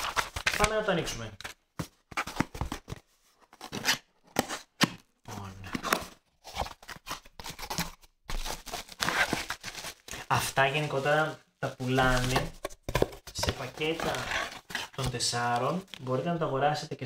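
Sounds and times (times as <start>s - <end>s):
cardboard box scraping and rustling: 13.4s - 15.0s.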